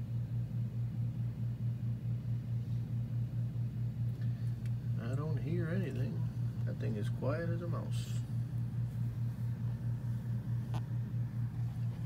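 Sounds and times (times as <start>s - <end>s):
low pulsing hum: 0.0s - 12.0s.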